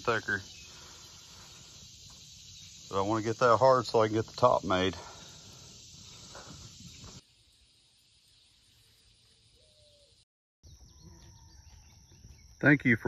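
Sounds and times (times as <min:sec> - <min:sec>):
faint outdoor hiss: 0:00.0 - 0:10.2.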